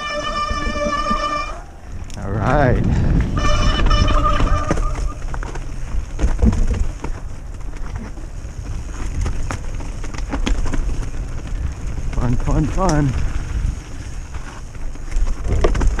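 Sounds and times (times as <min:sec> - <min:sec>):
wind and tyre rumble: 0:00.0 - 0:16.0
bike knocks and rattles: 0:02.8 - 0:16.0.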